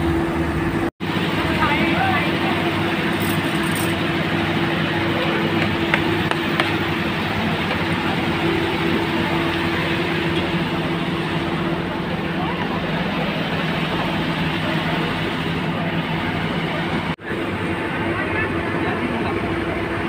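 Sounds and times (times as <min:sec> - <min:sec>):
crowd talking: 0:01.1 - 0:20.0.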